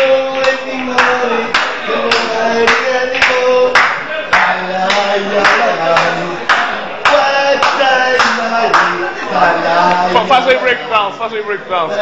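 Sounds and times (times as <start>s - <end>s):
audience clapping in time: 0.4s - 9.0s.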